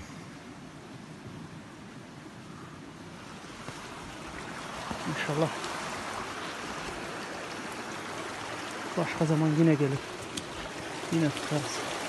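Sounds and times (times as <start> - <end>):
stream flowing water: 0.0 - 12.0.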